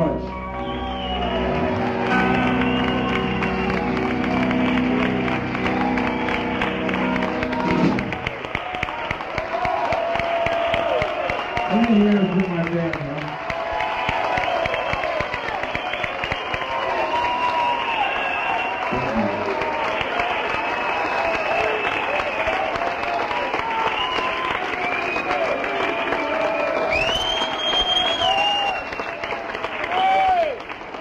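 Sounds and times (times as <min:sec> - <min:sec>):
audience applauding and cheering: 0:00.0 - 0:31.0
high whistle: 0:00.3 - 0:04.9, 0:14.2 - 0:19.4, 0:23.8 - 0:25.6, 0:26.6 - 0:29.3.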